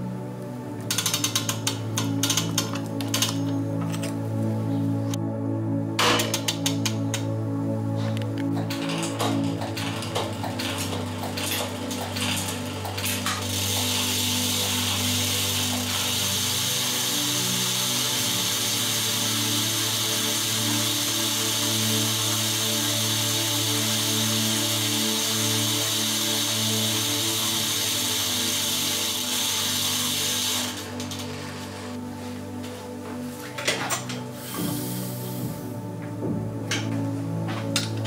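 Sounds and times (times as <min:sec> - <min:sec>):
bicycle chain whirring: 0:00.9 - 0:04.1, 0:08.6 - 0:32.0.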